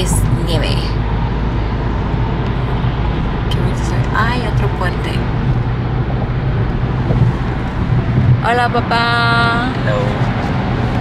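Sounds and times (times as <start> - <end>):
road and engine noise in car: 0.0 - 11.0.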